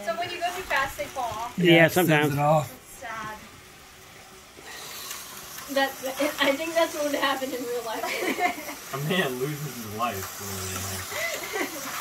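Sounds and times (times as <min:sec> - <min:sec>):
toy train whirring: 0:00.0 - 0:12.0.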